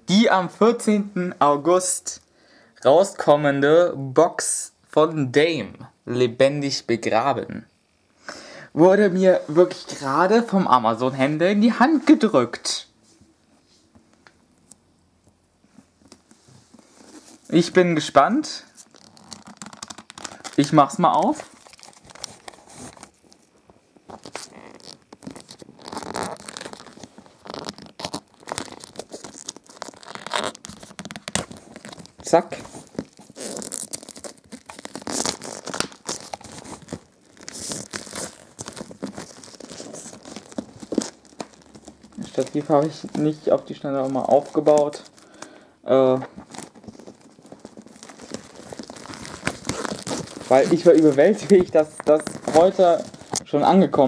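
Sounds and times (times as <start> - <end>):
plastic shrink-wrap tearing: 18.6 - 54.0.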